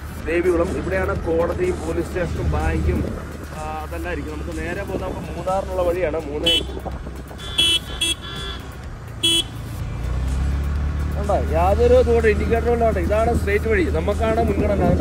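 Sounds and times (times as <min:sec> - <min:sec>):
motorcycle engine running: 0:00.0 - 0:15.0
vehicle horn toots: 0:06.4 - 0:09.7.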